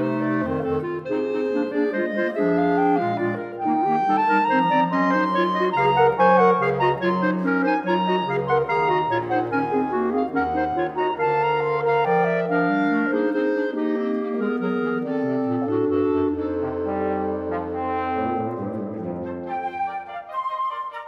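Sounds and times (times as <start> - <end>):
clarinet quartet playing: 0.0 - 21.0.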